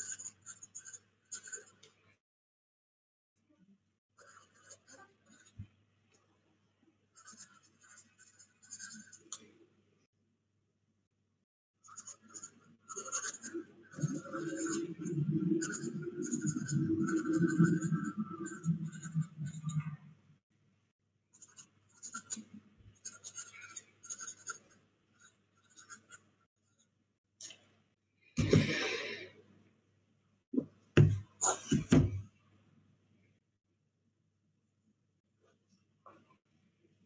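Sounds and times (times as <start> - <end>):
pen scratching on paper: 0.0 - 2.0, 4.2 - 5.7, 7.1 - 9.6, 11.8 - 20.1, 21.3 - 26.9.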